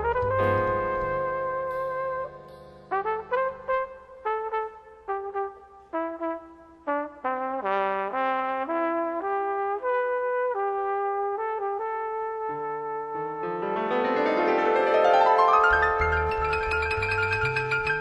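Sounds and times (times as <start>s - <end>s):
trumpet playing jazz melody: 0.0s - 18.0s.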